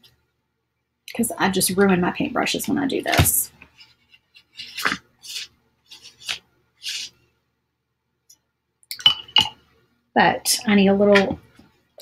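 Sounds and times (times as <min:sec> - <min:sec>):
paintbrush scraping a bottle: 0:03.7 - 0:07.2.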